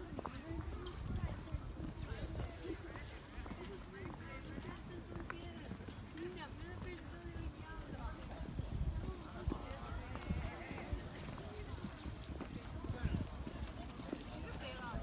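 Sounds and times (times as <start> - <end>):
footsteps on paved path: 0.0 - 15.0
people talking in background: 0.0 - 15.0.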